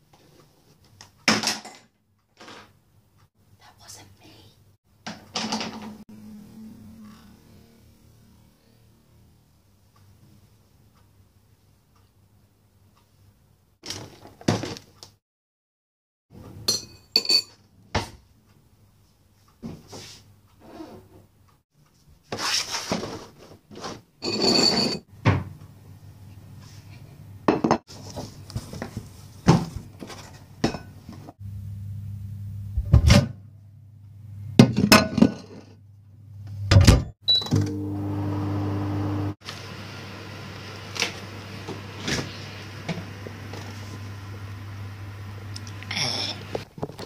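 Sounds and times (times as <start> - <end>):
microwave humming: 31.4 - 34.7, 36.2 - 46.6.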